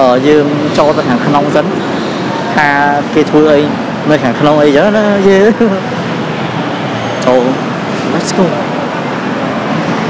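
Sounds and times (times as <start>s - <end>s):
man speaking: 0.0s - 1.8s, 2.5s - 5.9s, 7.2s - 8.7s
city traffic noise: 0.0s - 10.0s.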